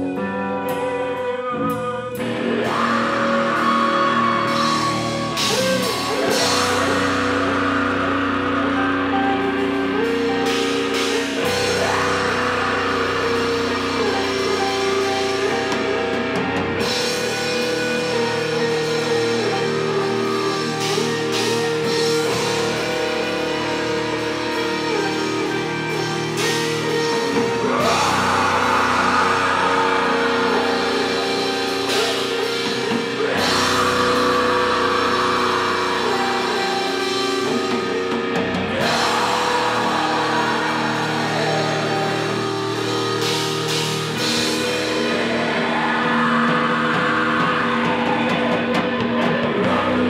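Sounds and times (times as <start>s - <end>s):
droning electric guitar chord: 0.0s - 50.0s.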